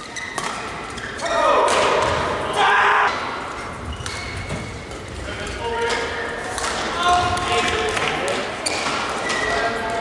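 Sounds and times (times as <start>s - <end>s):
shoes squeaking on court: 0.0s - 1.4s, 3.4s - 7.8s, 8.4s - 10.0s
rackets hitting shuttlecock: 0.2s - 2.4s, 5.9s - 9.5s.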